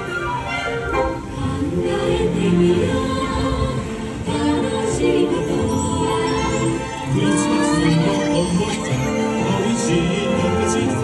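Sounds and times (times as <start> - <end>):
choir singing over music: 0.0 - 11.0.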